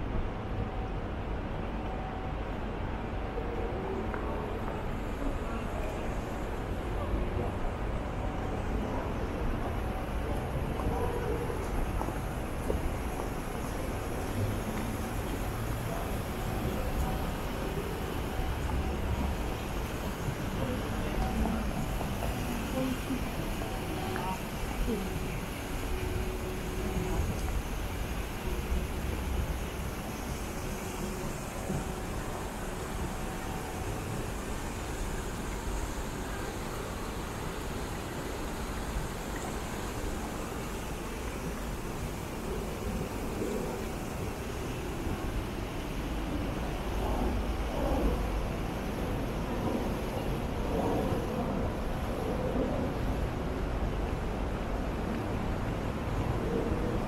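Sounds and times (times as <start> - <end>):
faint voices of passers-by: 0.5 - 57.0.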